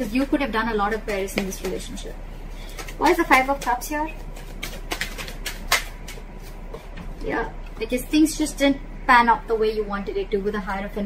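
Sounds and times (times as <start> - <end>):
steady mains hum: 0.0 - 11.0.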